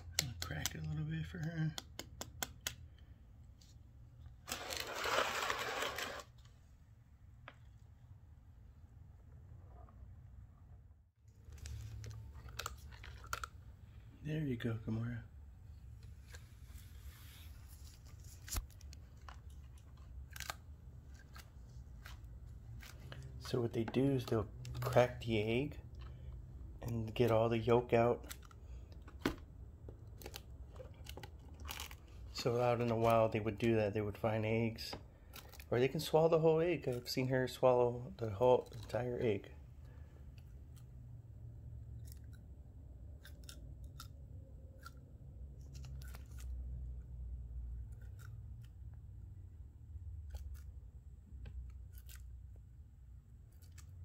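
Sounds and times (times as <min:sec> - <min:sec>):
sharp clicks and taps: 0:00.0 - 0:03.0
lizard crunching egg: 0:18.6 - 0:23.4.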